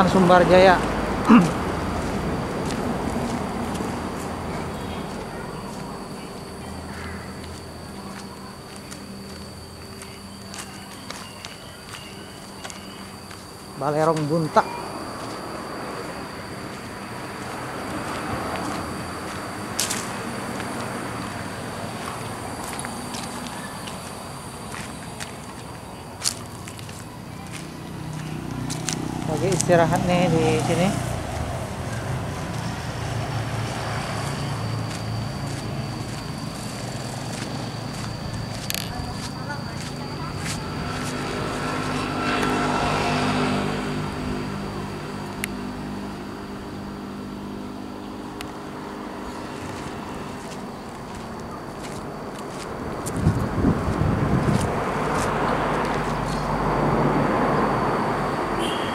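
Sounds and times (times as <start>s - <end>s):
low motor drone: 0.0s - 58.6s
high-pitched whine: 0.0s - 58.9s
high insect buzz: 0.7s - 58.9s
footsteps on gravel: 0.8s - 14.3s, 15.1s - 15.4s, 16.1s - 30.0s, 32.3s - 42.6s, 49.2s - 56.5s.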